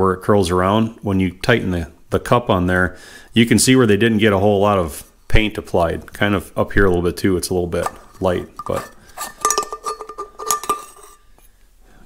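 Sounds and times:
metal threads clicking and scraping: 7.8s - 11.3s.

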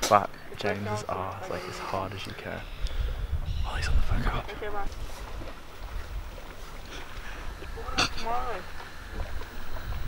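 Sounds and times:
wind rumble on microphone: 2.7s - 10.0s.

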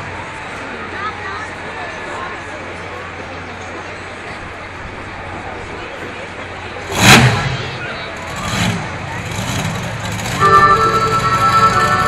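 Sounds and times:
monster truck engine revving: 6.8s - 12.0s.

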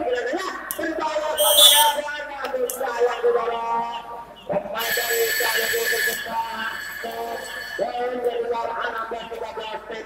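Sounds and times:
crowd hubbub: 0.8s - 3.0s.

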